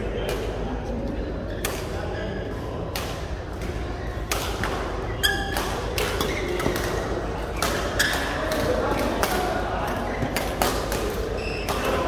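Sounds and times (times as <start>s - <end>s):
rackets hitting shuttlecock: 2.9s - 12.0s
court shoes squeaking: 3.6s - 12.0s.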